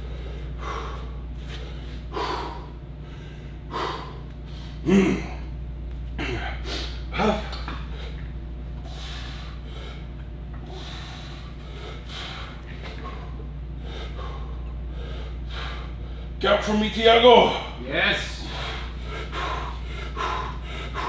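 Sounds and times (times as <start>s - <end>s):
man breathing hard: 0.0s - 5.5s, 6.2s - 16.4s, 18.2s - 21.0s
low hum: 0.0s - 21.0s
man grunting: 4.8s - 5.5s, 6.2s - 7.8s.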